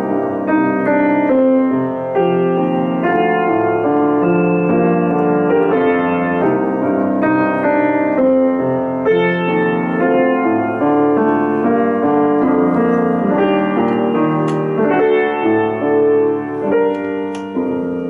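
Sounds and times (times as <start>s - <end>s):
grand piano melody: 0.0s - 18.0s.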